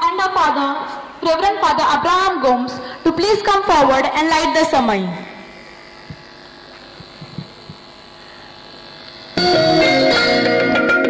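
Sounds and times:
public address system hum and hiss: 0:00.0 - 0:05.6.

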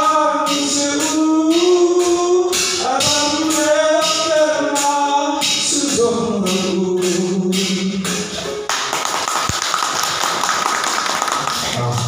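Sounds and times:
audience clapping and cheering: 0:08.7 - 0:12.0.

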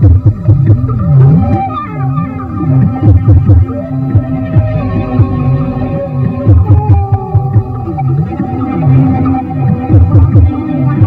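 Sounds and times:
held higher synth notes: 0:00.0 - 0:11.0
wobbling low electronic tone: 0:00.0 - 0:11.0.

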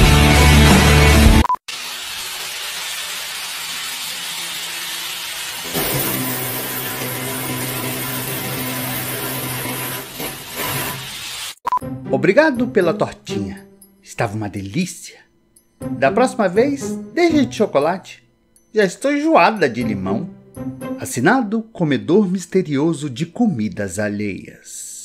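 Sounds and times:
background music: 0:00.0 - 0:01.5, 0:11.7 - 0:23.1
power tool grinding concrete: 0:05.1 - 0:11.3.

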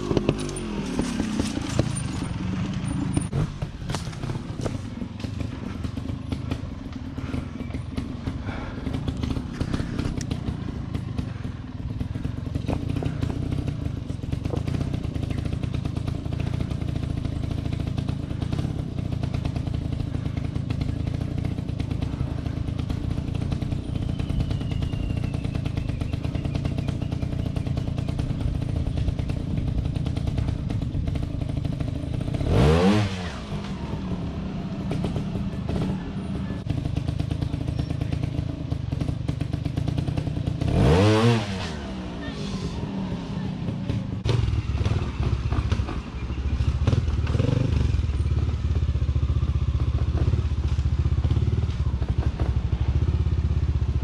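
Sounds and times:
motorcycle engine at low revs: 0:00.0 - 0:54.0
motorcycle throttle blips: 0:00.0 - 0:54.0.

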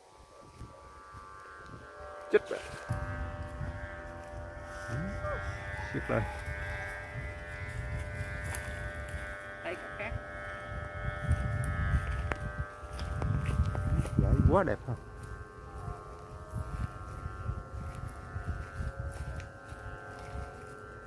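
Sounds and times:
kite flutes humming: 0:00.0 - 0:21.0
wind rumbling on microphone: 0:00.0 - 0:21.0.

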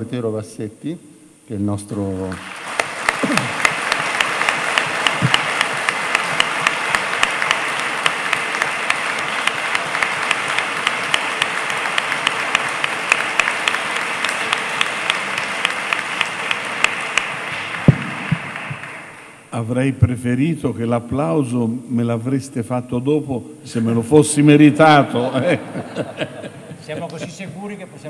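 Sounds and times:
audience applauding: 0:02.3 - 0:19.5.

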